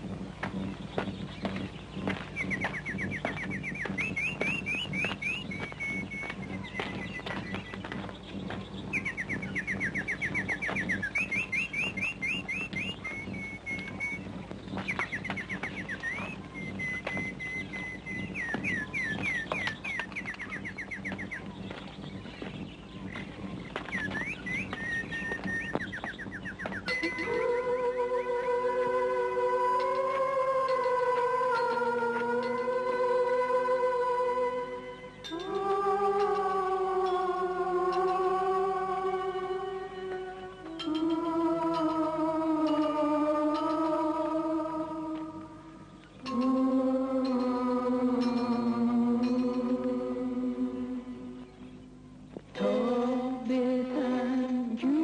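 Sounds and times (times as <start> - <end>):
songbird singing trills: 0.0 - 52.9
music with sustained tones: 0.0 - 55.0
steady low hum: 0.0 - 55.0.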